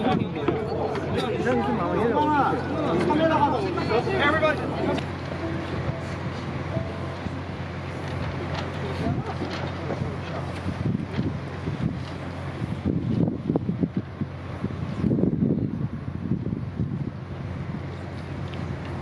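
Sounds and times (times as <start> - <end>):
indistinct crowd chatter: 0.0 - 13.0
steady low hum: 0.0 - 19.0
wind buffeting microphone: 0.0 - 19.0.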